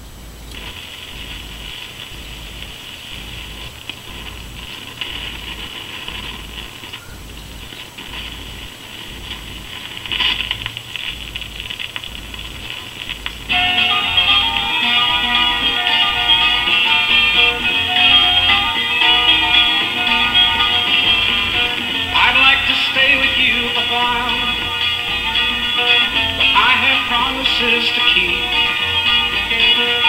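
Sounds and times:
amplifier hiss and hum: 0:00.0 - 0:30.0
guitar notes from record: 0:00.0 - 0:30.0
stylus scraping on record: 0:00.4 - 0:30.0.

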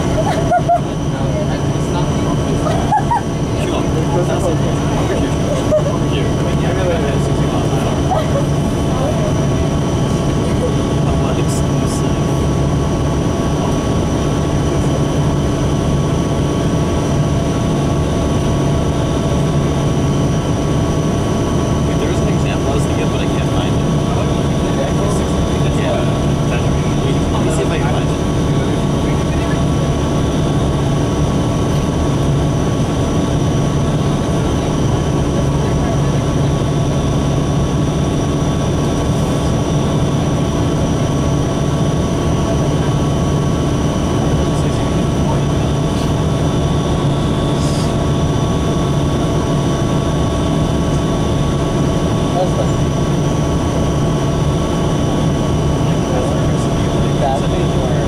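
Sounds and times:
bus engine running: 0:00.0 - 0:58.0
constant held tones: 0:00.0 - 0:58.0
road rumble: 0:00.0 - 0:58.0.

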